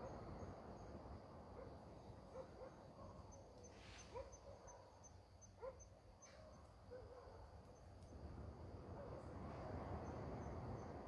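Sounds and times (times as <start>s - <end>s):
insect chirping: 0.0s - 6.3s.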